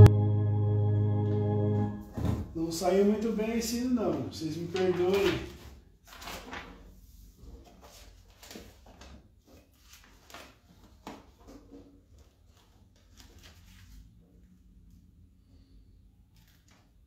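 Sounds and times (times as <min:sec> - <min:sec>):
organ note: 0:00.0 - 0:02.2
hymnal pages rustling: 0:01.8 - 0:14.4.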